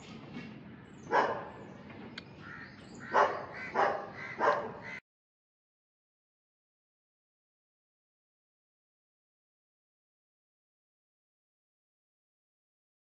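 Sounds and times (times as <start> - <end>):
dog barking: 1.1 - 1.6, 3.0 - 5.0.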